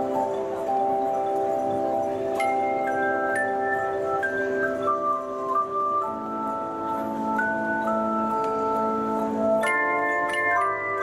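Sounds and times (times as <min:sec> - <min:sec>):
handchimes playing chord and melody: 0:00.0 - 0:11.0.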